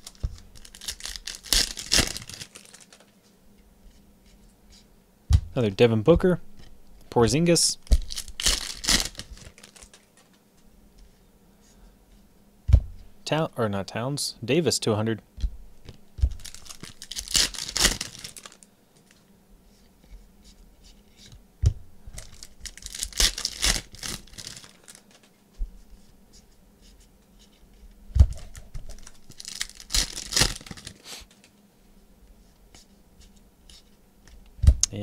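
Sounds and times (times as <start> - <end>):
foil wrappers tearing and crinkling: 0.0 - 3.1, 7.9 - 10.3, 16.3 - 18.7, 22.2 - 25.2, 28.4 - 31.0.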